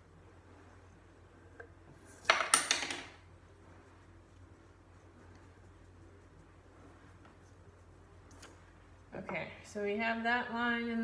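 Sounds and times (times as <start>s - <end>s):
pencils clattering on wooden table: 2.2s - 3.2s.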